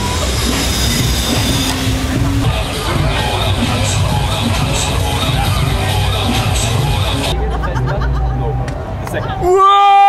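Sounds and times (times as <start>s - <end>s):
zip-line pulleys whining on cable: 0.0s - 2.3s.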